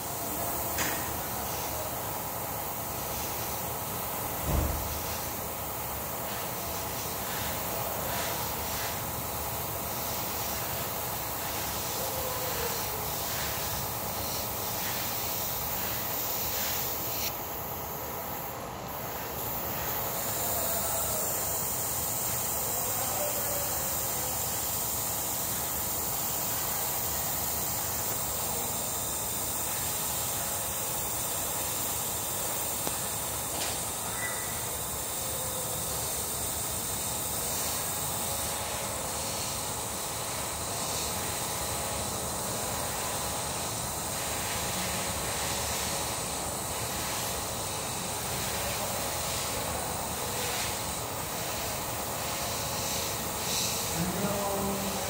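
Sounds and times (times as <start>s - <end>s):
airbrush hissing: 0.0s - 55.0s.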